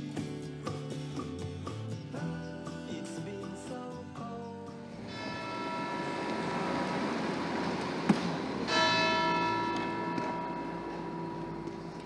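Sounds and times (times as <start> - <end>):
church bell ringing: 5.1 - 12.0.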